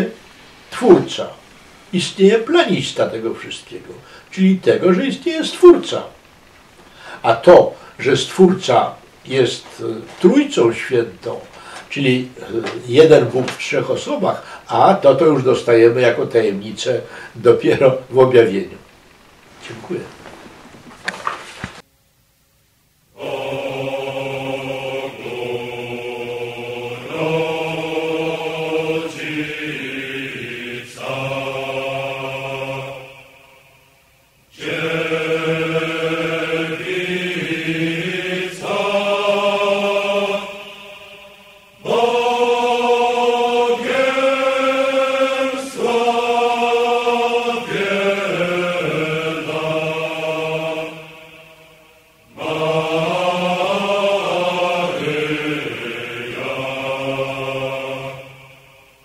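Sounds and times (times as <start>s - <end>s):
slow chant-like singing: 0.0s - 20.5s, 23.1s - 59.0s.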